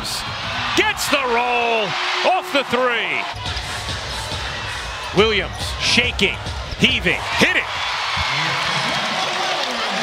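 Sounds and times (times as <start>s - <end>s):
arena crowd hubbub: 0.0s - 10.0s.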